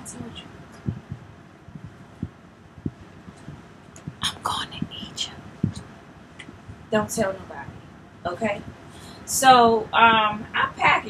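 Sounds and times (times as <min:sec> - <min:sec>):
soft low thumps: 0:00.7 - 0:07.0
woman whispering: 0:04.2 - 0:05.4.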